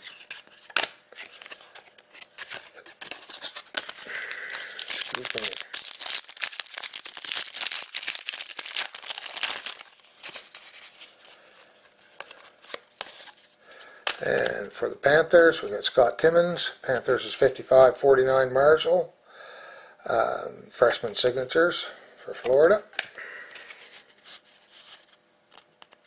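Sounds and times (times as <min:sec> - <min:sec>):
plastic wrapper tearing and crinkling: 0:00.0 - 0:11.1
cards being handled: 0:00.0 - 0:14.5.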